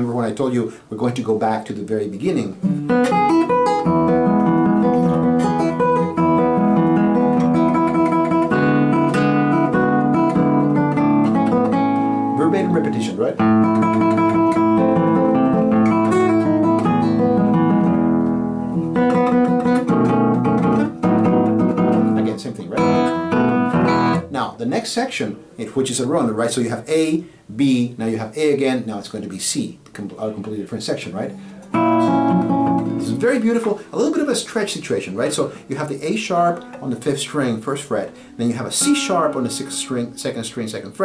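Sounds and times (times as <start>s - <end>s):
fingerstyle classical guitar: 2.5s - 24.4s, 31.3s - 33.9s, 35.2s - 40.4s.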